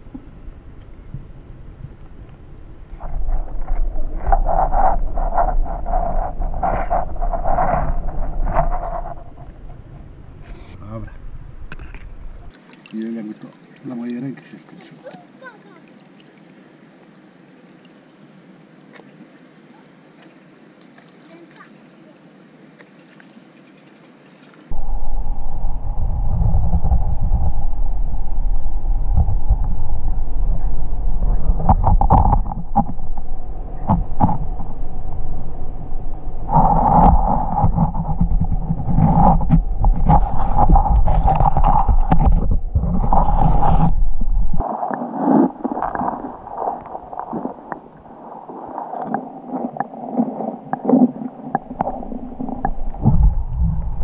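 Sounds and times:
muffled underwater rumble: 0:00.0 - 0:12.5, 0:24.7 - 0:54.0
knocks and scrapes: 0:03.0 - 0:12.5, 0:24.7 - 0:48.2, 0:49.0 - 0:54.0.

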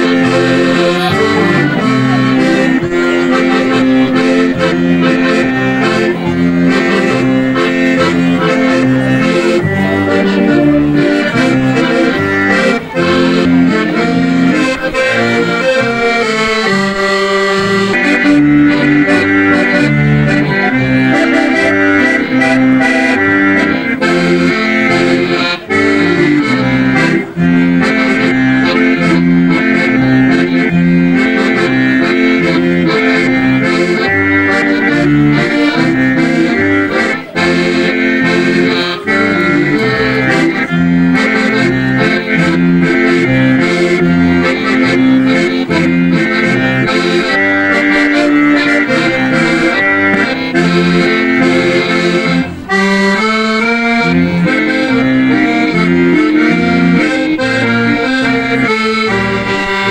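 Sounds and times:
double bass: 0:00.0 - 0:59.9
piano accordions playing folk dance tune: 0:00.0 - 0:59.9.

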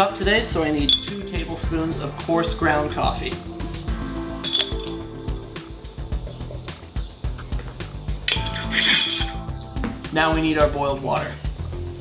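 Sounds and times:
light background music: 0:00.0 - 0:12.0
metal spoon clinking: 0:00.9 - 0:01.2, 0:04.4 - 0:05.0, 0:08.3 - 0:09.5
glass jar set down: 0:04.4 - 0:05.0, 0:08.3 - 0:09.4.

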